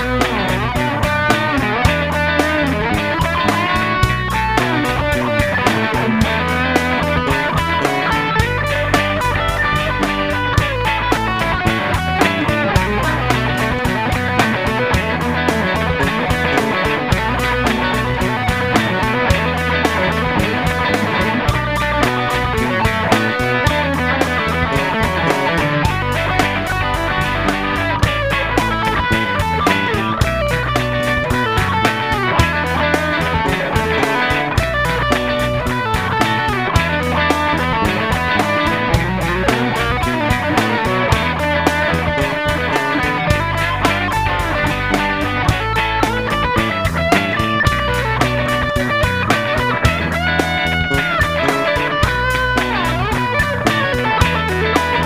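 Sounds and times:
bass: 0.0 - 55.0
drum beat: 0.0 - 55.0
electric guitar: 0.0 - 55.0.

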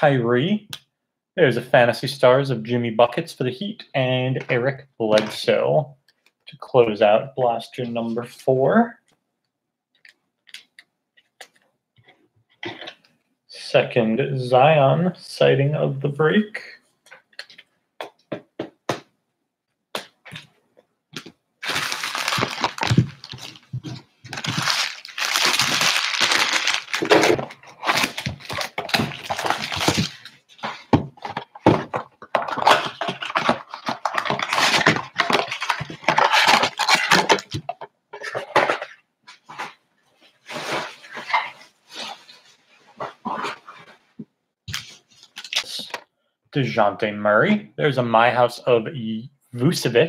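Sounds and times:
foil packs rustling: 21.6 - 31.0, 32.5 - 37.7
plastic wrap crinkling: 21.6 - 38.4.

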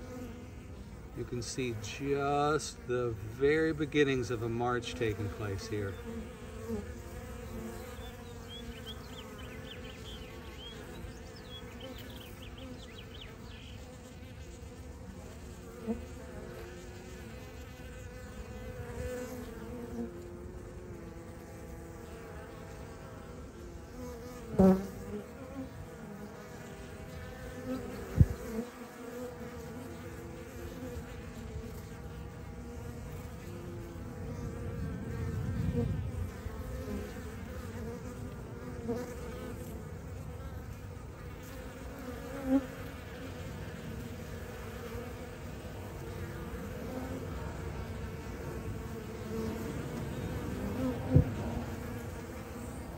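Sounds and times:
bee swarm humming: 0.0 - 52.9.

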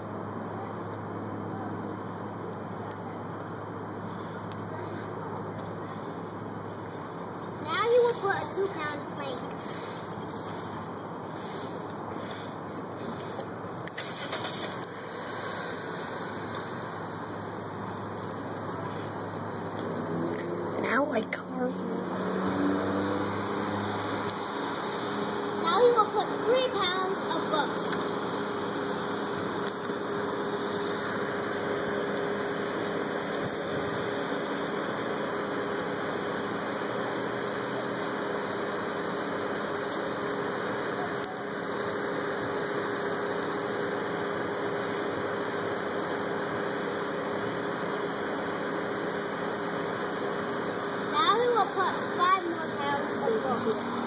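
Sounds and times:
distant traffic hum: 0.0 - 54.0.

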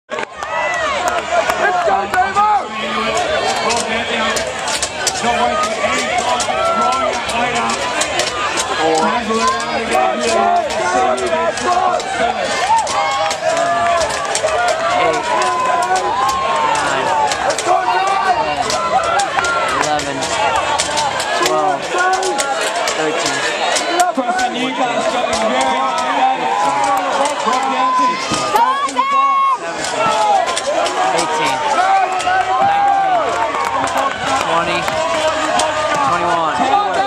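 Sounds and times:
crowd shouting and cheering: 0.1 - 37.0.

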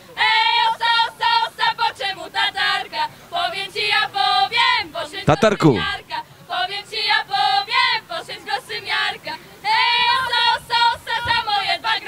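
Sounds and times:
girls singing unaccompanied: 0.0 - 12.0.

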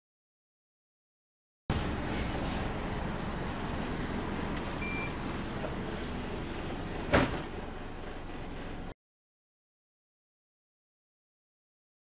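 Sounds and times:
bus engine rumble: 1.7 - 9.0
short high beep: 4.8 - 5.2
sharp thump: 7.1 - 7.5.

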